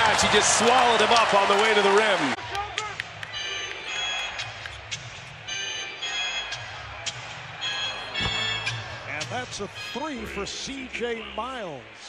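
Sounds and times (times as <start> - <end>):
crowd noise: 0.0 - 12.0
arena music: 2.4 - 12.0.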